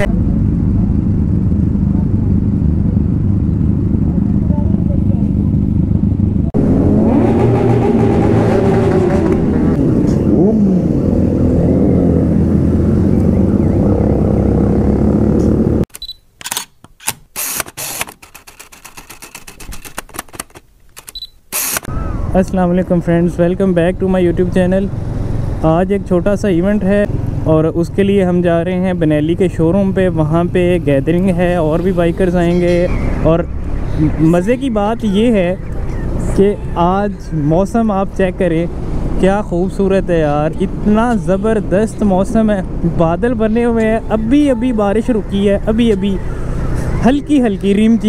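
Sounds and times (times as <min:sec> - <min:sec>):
several motorcycles running: 0:00.0 - 0:15.8, 0:21.8 - 0:48.0
motorcycle engine rumble: 0:00.0 - 0:15.9, 0:21.8 - 0:48.0
sharp clicks: 0:15.9 - 0:21.9.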